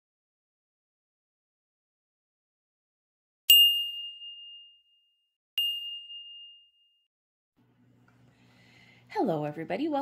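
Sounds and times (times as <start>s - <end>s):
high bell-like ding: 3.5s - 7.1s.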